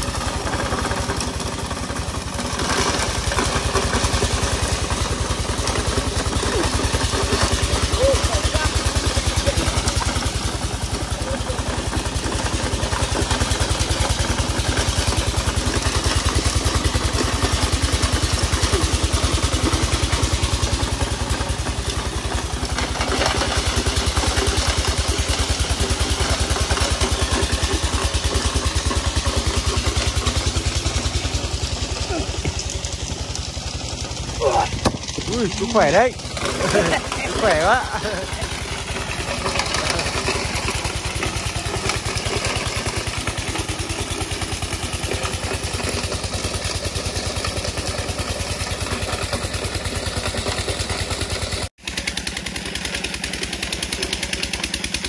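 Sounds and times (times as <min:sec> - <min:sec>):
small engine running: 0:00.0 - 0:55.0.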